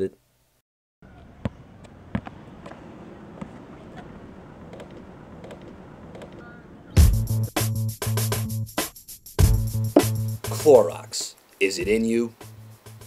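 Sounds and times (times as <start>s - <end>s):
basketball dribbled on asphalt: 1.4s - 2.8s
music with heavy drum beat: 7.0s - 10.7s.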